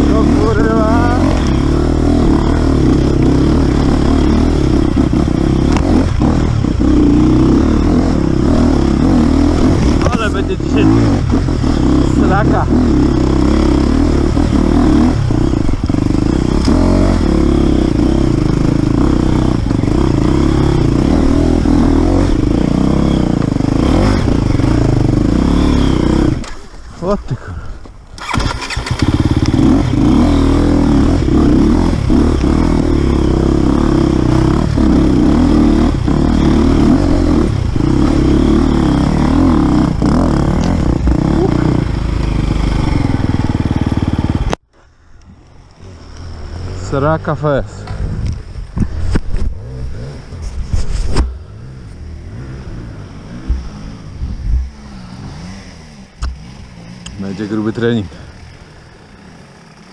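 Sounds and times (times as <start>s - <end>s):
motorcycle engine revving: 0.0s - 27.6s, 28.2s - 44.7s, 45.6s - 59.9s.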